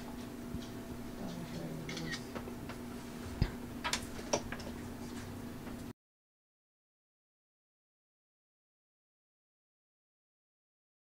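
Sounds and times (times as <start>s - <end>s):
steady low hum: 0.0s - 5.9s.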